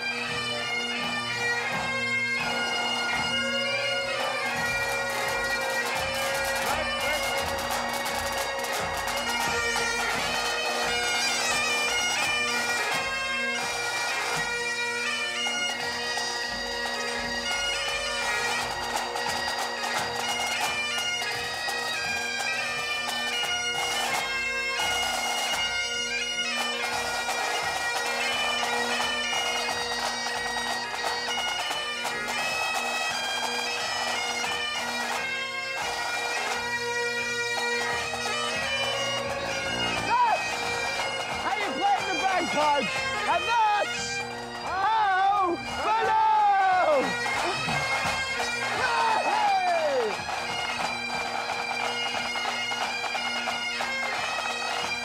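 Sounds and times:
bagpipe band playing: 0.0s - 55.0s
people shouting: 4.2s - 8.8s, 39.9s - 41.0s, 41.6s - 43.9s, 44.6s - 47.9s, 48.6s - 50.2s.

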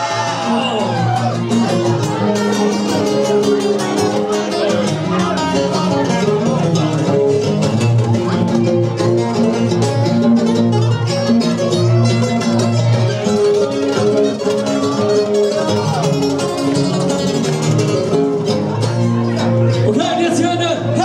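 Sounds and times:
acoustic guitars strumming: 0.0s - 21.0s.

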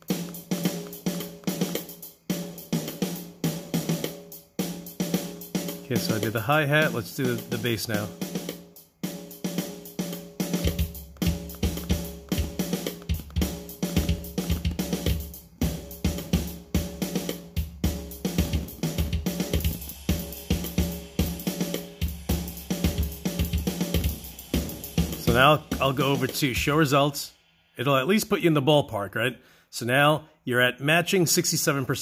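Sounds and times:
closed hi-hat ticks: 0.0s - 3.3s, 4.2s - 17.5s.

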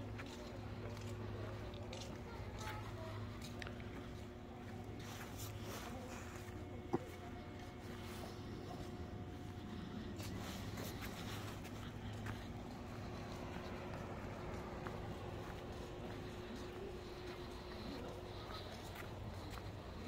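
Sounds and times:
footsteps on pavement: 0.0s - 20.0s
low background rumble: 0.0s - 20.0s.

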